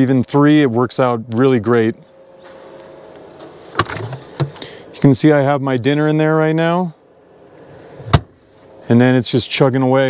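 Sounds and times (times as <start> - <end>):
faint handling rustle: 7.4 - 8.9.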